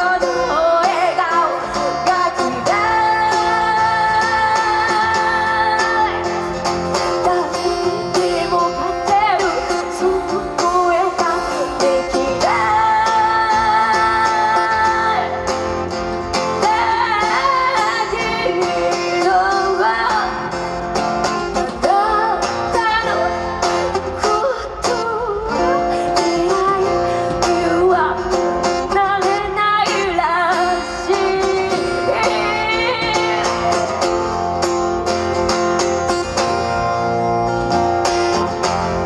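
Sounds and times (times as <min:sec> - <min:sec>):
woman singing slow song: 0:00.0 - 0:15.5, 0:16.6 - 0:20.6, 0:21.5 - 0:34.1
acoustic guitar strumming: 0:00.0 - 0:39.0.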